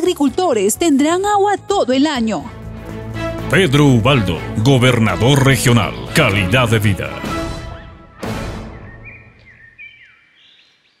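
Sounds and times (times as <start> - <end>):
faint bird-like chirps: 8.8 - 11.0.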